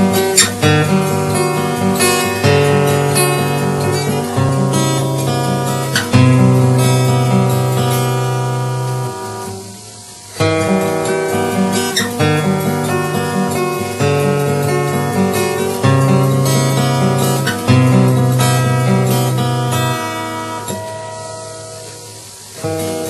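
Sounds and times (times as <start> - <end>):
acoustic guitar playing: 0.0 - 23.0.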